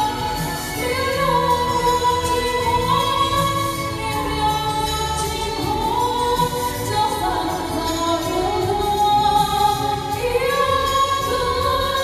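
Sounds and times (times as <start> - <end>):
backing track music: 0.0 - 12.0.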